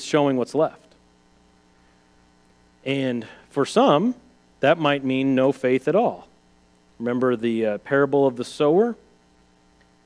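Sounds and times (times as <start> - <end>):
faint electrical mains hum: 0.0 - 10.0.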